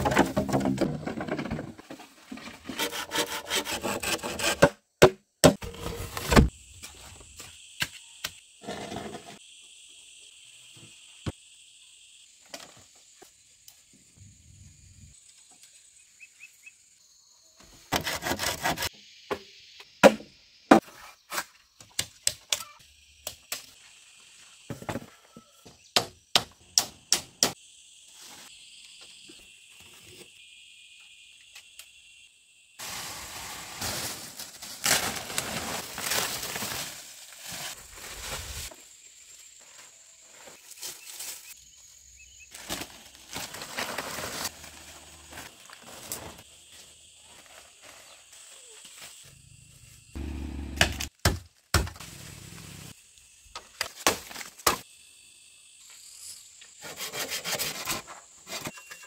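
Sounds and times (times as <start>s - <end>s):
bamboo poles clacking together: 0.0s - 2.2s
dry palm fronds dragged: 32.8s - 38.8s, 42.6s - 46.5s.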